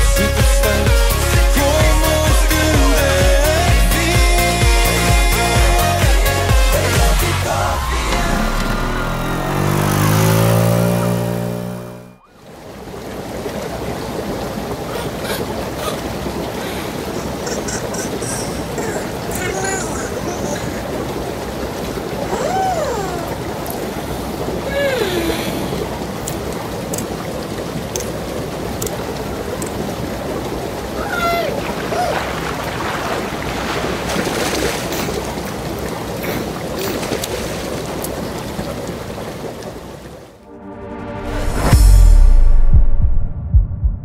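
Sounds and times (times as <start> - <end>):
spa bath air jets bubbling: 0.0 - 7.5, 12.4 - 40.2
pop music: 0.0 - 9.2.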